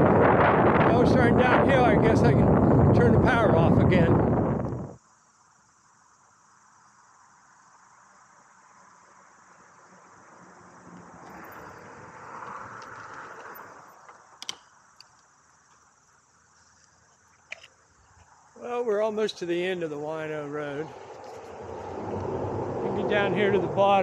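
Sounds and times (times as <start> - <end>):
insects chirring: 0.0 - 24.0
electric bike tires humming: 4.1 - 18.3, 20.6 - 24.0
sharp clicks: 14.4 - 15.8.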